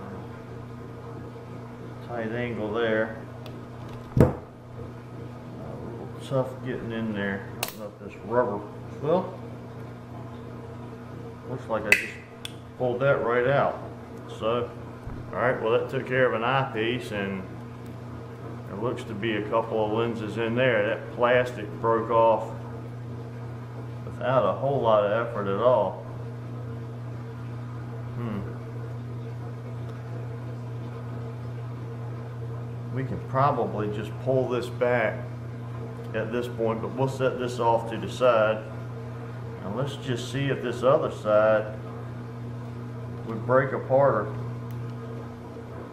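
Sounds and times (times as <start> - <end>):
steady low hum: 0.0 - 45.9
knock with click: 4.2 - 4.4.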